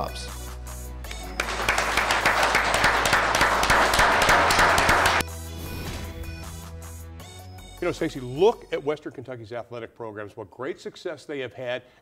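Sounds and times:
quiet background music: 0.0 - 11.8
audience applauding: 1.1 - 5.2.

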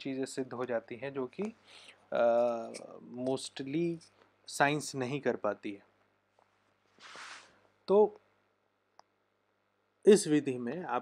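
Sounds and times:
man speaking: 0.0 - 5.9, 7.8 - 8.2, 10.0 - 11.0.

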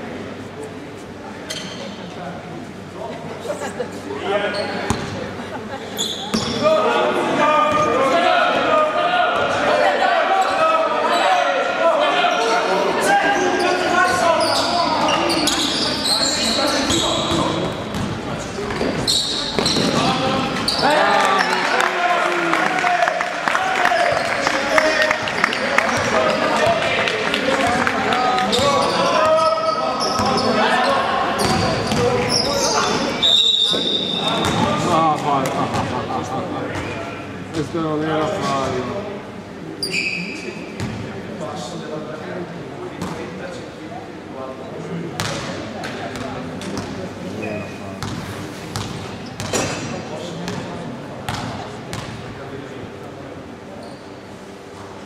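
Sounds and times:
players and coaches calling: 6.0 - 17.6, 19.1 - 38.8
basketball bouncing on court: 17.2 - 18.9, 19.6 - 20.2, 48.0 - 49.8, 51.3 - 52.2
referee's whistle blast: 33.2 - 34.4.

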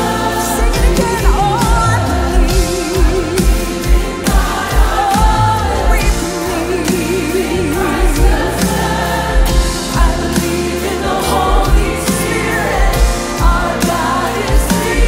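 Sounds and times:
band playing worship music: 0.0 - 15.0
group of singers: 0.0 - 15.0
steady drum beat: 0.0 - 15.0
woman singing lead: 0.0 - 15.0.

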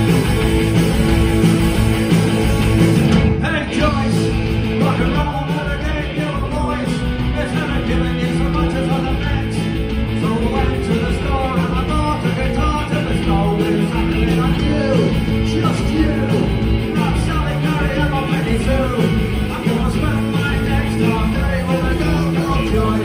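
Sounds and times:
bass guitar: 0.0 - 23.0
drums: 0.0 - 23.0
electric guitars: 0.0 - 23.0
man singing: 3.3 - 23.0.

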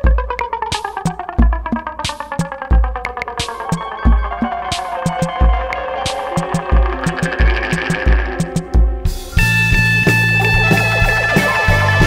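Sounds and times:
drums with heavy low beat: 0.0 - 12.0
cymbal ticks: 0.2 - 8.9
sustained chords: 3.0 - 12.0
electric bass: 6.7 - 12.0.

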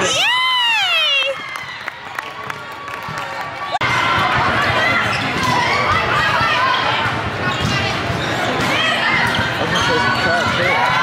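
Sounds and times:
voices calling out in gymnasium: 0.0 - 11.0.

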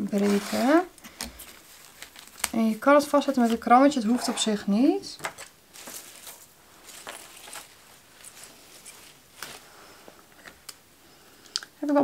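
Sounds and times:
rustling of flower stems: 0.0 - 4.7, 5.3 - 10.6.

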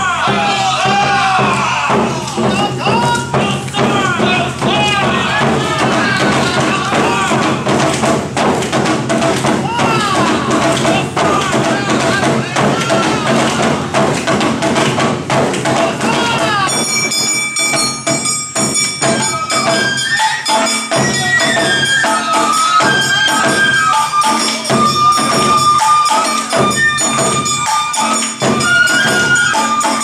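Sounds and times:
dancers shouting rhythmic calls: 0.0 - 17.1, 19.1 - 30.0
clanging metal percussion: 0.0 - 30.0
festival music with drums: 0.0 - 30.0.

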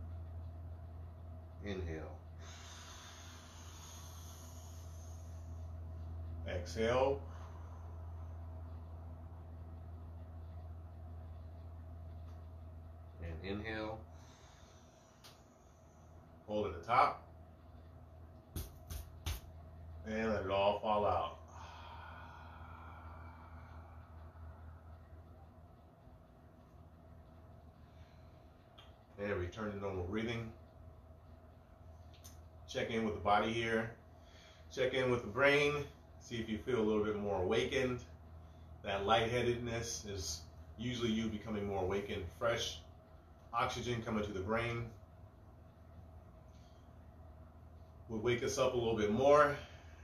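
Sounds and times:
low hum: 0.0 - 50.0
man inhaling deeply through mouth: 2.4 - 5.6.

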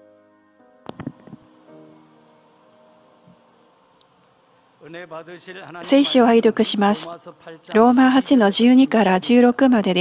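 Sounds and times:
person speaking: 4.8 - 10.0.

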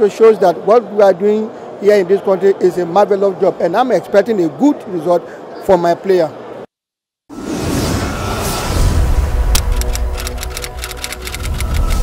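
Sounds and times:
rising whoosh: 7.3 - 9.8
rapid ticking clicks: 9.6 - 12.0.

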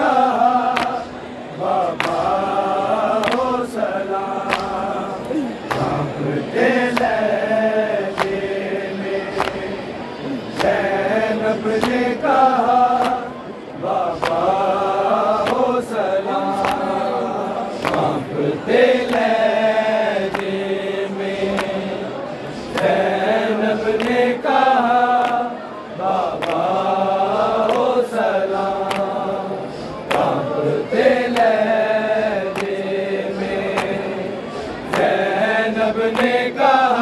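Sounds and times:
men chanting a lament: 0.0 - 37.0.

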